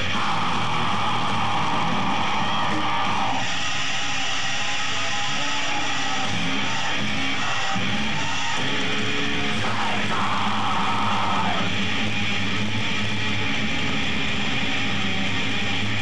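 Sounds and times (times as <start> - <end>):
death metal band playing live: 0.0 - 16.0
distorted electric guitars: 0.0 - 16.0.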